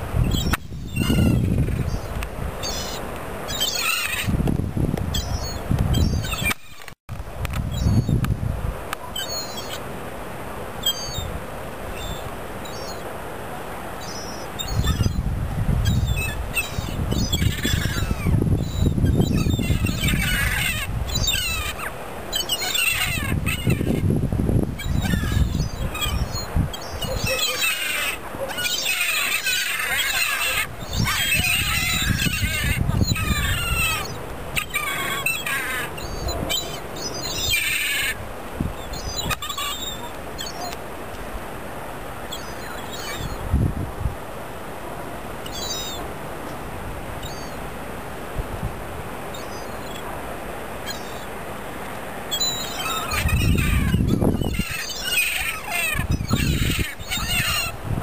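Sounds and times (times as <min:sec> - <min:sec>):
gulls calling: 0:00.2 - 0:04.4, 0:05.1 - 0:07.0, 0:08.9 - 0:09.9, 0:10.8 - 0:40.9, 0:42.2 - 0:43.6, 0:45.3 - 0:46.2, 0:47.2 - 0:47.6, 0:50.8 - 0:51.4, 0:52.2 - 0:58.0.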